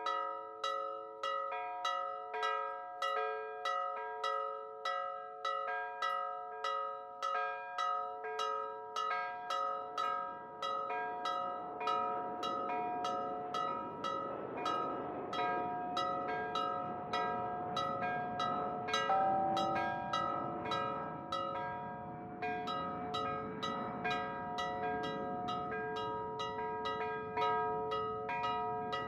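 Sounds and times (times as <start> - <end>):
church bells pealing: 0.0 - 29.0
deep bell tone: 19.0 - 21.6.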